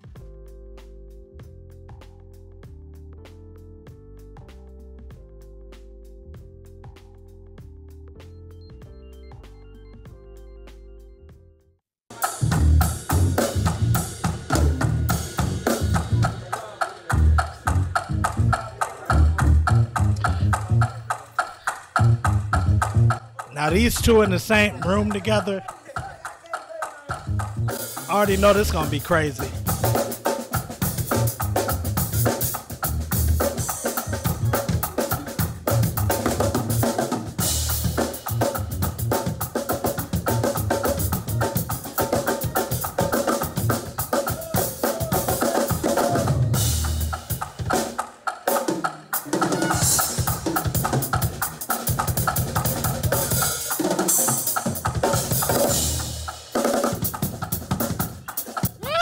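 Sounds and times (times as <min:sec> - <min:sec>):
keyboard chords: 0:00.0 - 0:26.5, 0:27.1 - 0:54.6
drum kit playing fast fills: 0:12.1 - 0:59.0.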